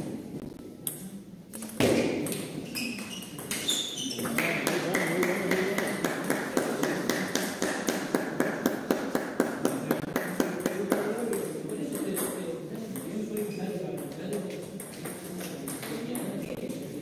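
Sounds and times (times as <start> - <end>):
murmur of voices: 2.8 - 17.0.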